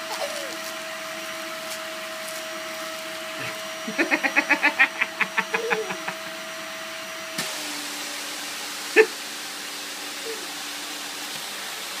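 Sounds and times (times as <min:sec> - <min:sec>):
vacuum cleaner running: 0:00.0 - 0:12.0.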